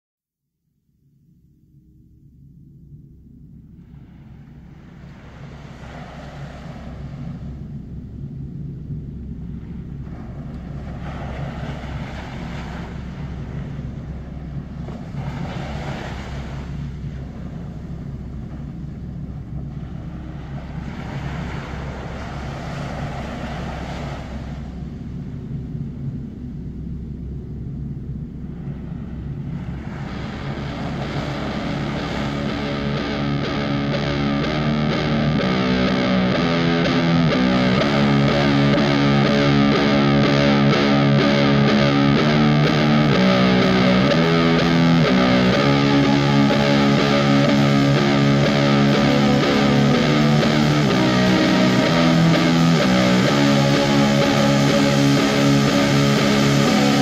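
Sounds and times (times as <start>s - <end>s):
low sustained drone: 0.9s - 57.0s
noisy washes: 3.4s - 57.0s.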